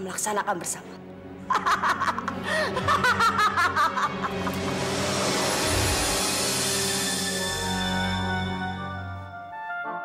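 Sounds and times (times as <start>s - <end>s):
woman laughing evilly: 1.5s - 5.0s.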